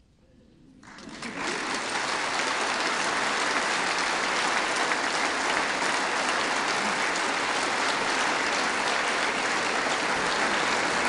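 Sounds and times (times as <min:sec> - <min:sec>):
audience applauding: 0:00.8 - 0:11.0.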